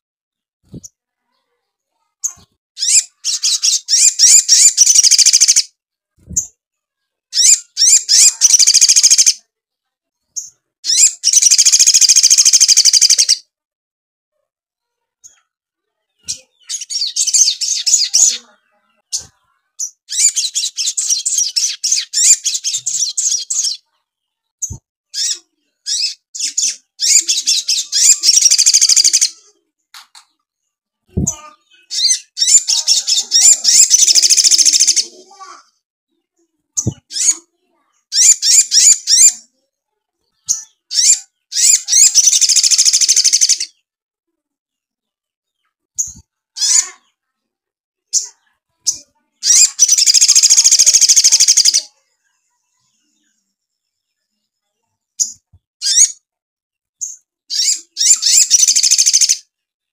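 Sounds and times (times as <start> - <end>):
bird chattering chirps: 2.2 - 5.7, 7.3 - 9.4, 10.4 - 13.4, 16.2 - 18.5, 19.1 - 23.9, 24.6 - 29.6, 31.1 - 35.6, 36.8 - 37.5, 38.1 - 39.5, 40.5 - 43.8, 48.1 - 51.9, 55.2 - 56.2, 57.0 - 59.4.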